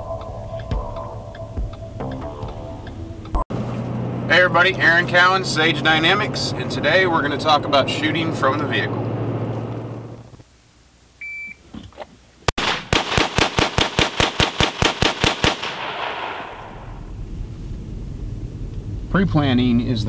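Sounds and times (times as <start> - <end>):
pistol shots: 12.6 - 16.9.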